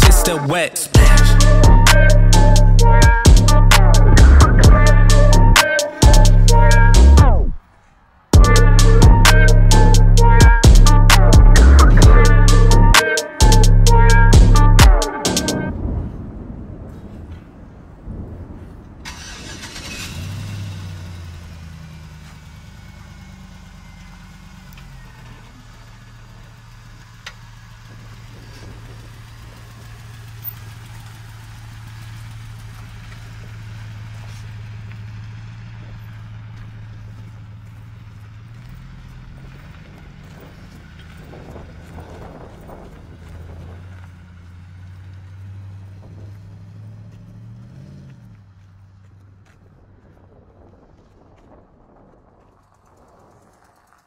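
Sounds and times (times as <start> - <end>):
pickup truck engine idling: 19.1 - 50.4.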